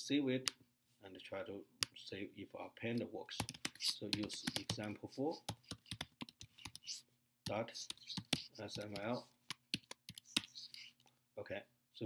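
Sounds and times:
typing on a computer keyboard: 3.4s - 6.8s, 8.0s - 10.5s.

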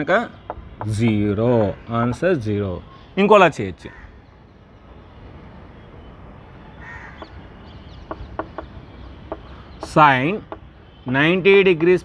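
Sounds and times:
harsh bird caw: 0.3s - 4.5s, 6.6s - 11.0s
chalk tapping on blackboard: 0.4s - 2.3s, 8.1s - 10.7s.

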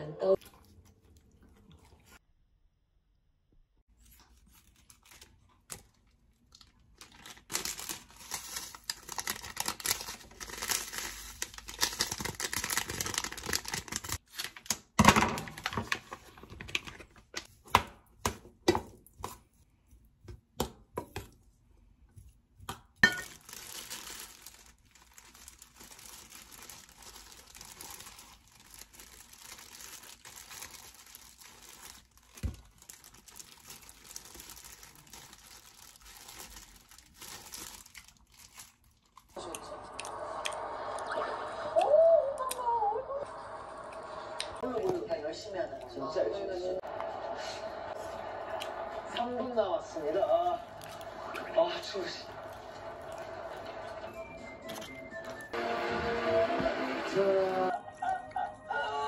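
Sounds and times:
plastic gloves crinkling: 3.9s - 18.2s, 22.3s - 39.4s, 49.6s - 55.6s
plastic packet crinkling and tearing: 4.0s - 17.5s, 23.0s - 39.4s.

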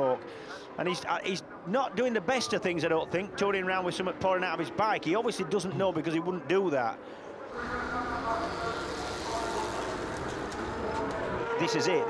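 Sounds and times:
racing motorcycle engines high revs: 7.6s - 11.0s.

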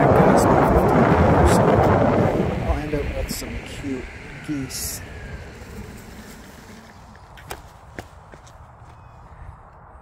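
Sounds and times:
skateboard wheel rumble: 0.0s - 8.5s
falling motor whine: 0.1s - 7.4s.

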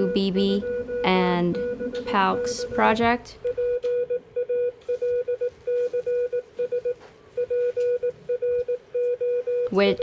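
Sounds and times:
morse code beacon tone: 0.0s - 10.0s.

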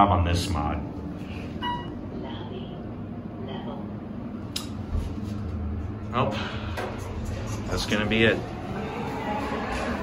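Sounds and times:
elevator car humming: 1.2s - 10.0s.

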